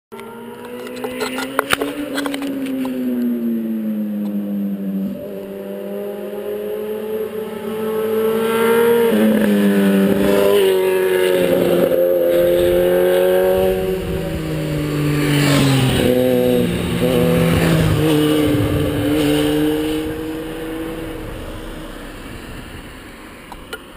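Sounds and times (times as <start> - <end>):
motorcycle engine accelerating: 0.1 - 23.9.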